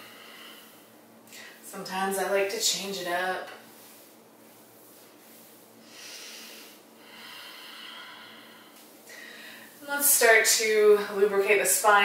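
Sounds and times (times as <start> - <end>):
woman breathing slowly: 0.0 - 1.6, 5.8 - 9.8.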